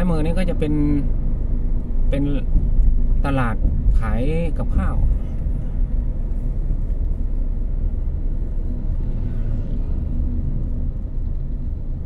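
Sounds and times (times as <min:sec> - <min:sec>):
car driving on road: 0:00.0 - 0:12.0
engine and tyre noise: 0:00.0 - 0:12.0.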